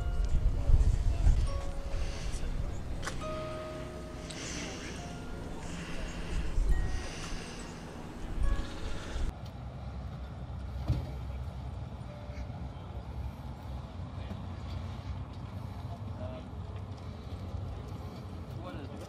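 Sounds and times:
faint voices: 0.0 - 9.3
low rumble: 0.0 - 9.3.

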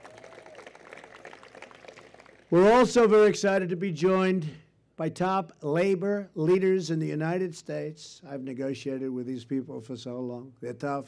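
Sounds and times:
faint audience applause: 0.0 - 3.1.

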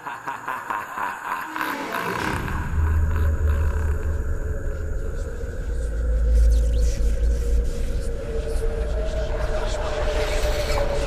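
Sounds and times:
deep low rumble: 2.0 - 11.0.

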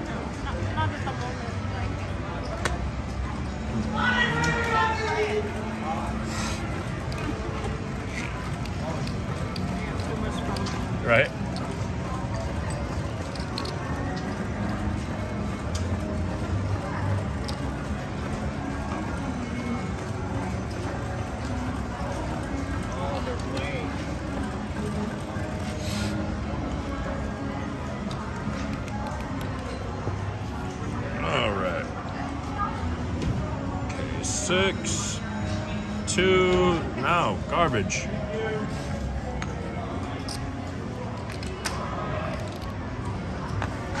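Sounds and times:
background music: 0.0 - 44.0
murmur of distant voices: 0.0 - 44.0.

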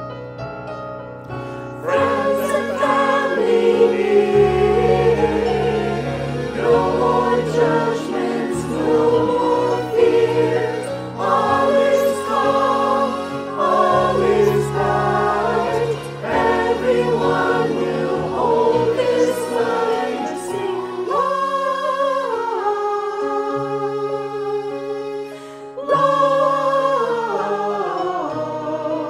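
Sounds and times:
choir singing in harmony: 1.5 - 29.0.

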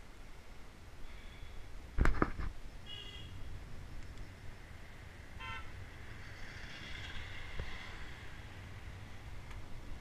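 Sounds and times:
car horn toot: 2.9 - 3.4, 5.4 - 5.7.

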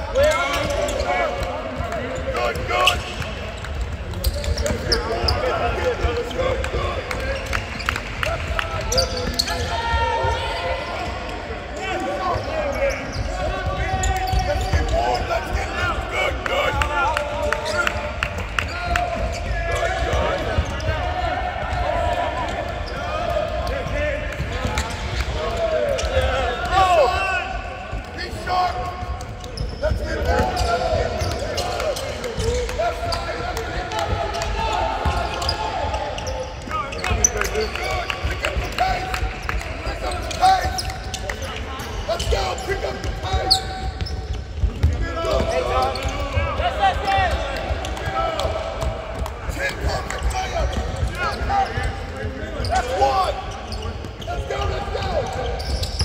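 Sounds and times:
shouted voices: 0.0 - 3.4, 4.2 - 7.6, 8.2 - 44.0, 44.8 - 56.0
basketballs bouncing on hardwood: 43.0 - 52.4.

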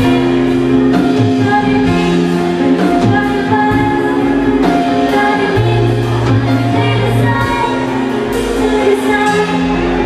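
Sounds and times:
drums: 0.0 - 10.0
keyboards: 0.0 - 10.0
live pop band playing: 0.0 - 10.0
woman singing into a microphone: 0.0 - 10.0.

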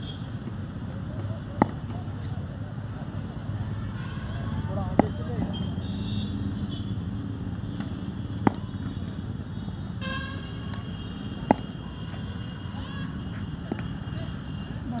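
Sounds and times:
steady background noise: 0.0 - 15.0
cricket bat striking ball: 1.5 - 2.0, 4.7 - 5.6, 7.7 - 9.1, 10.5 - 11.9, 13.6 - 14.0.

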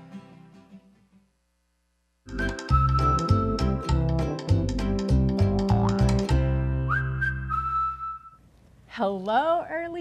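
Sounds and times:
high whistle-like sliding note: 2.3 - 4.1, 6.9 - 8.4.

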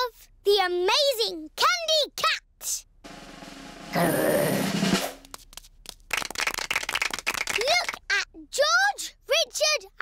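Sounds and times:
drum roll: 3.1 - 5.4
small hands clapping: 5.0 - 8.1.

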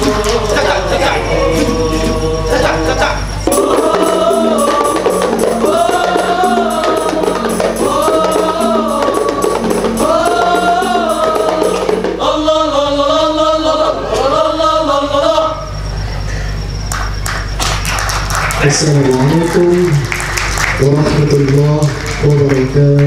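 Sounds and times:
frame drums beating: 0.0 - 12.4
men singing in chorus: 0.0 - 15.8.

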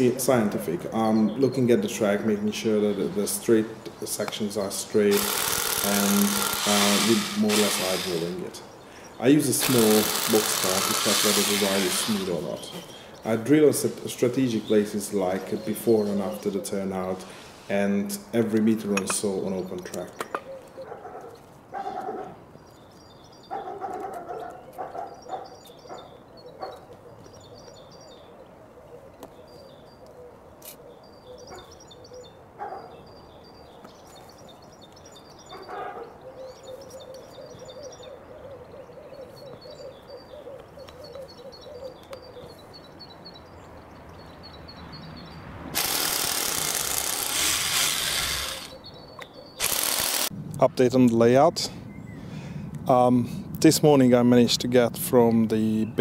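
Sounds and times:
birds chirping and singing: 0.0 - 56.0
power tool running: 5.1 - 8.4, 9.6 - 12.4, 45.8 - 48.8, 49.6 - 50.4.

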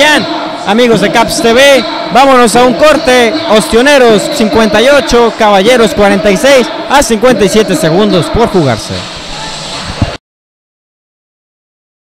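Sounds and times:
arena background noise: 0.0 - 10.2.

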